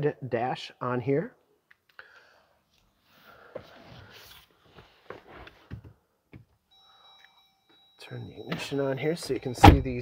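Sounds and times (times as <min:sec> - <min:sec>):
electronic warning tone: 0:06.7 - 0:10.0.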